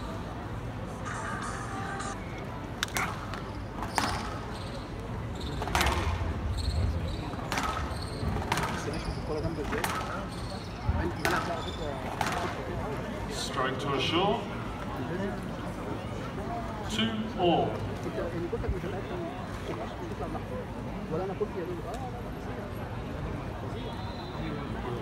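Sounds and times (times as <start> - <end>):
squash ball hitting racket and walls: 5.5 - 6.2, 7.5 - 9.0, 9.6 - 10.2.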